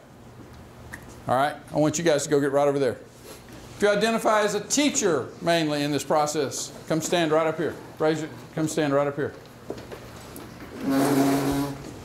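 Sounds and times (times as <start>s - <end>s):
chair scraping across floor: 10.2s - 12.0s.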